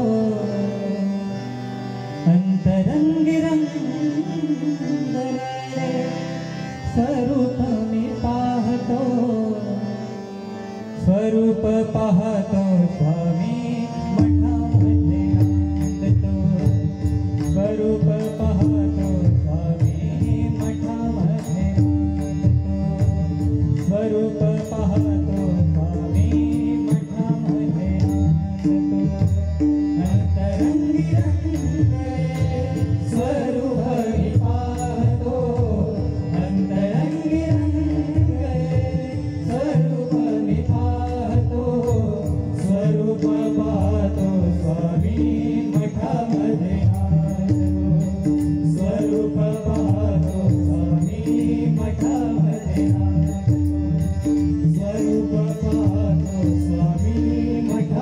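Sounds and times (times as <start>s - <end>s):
harmonium melody: 0.0s - 58.0s
chant-like voices: 30.0s - 53.4s.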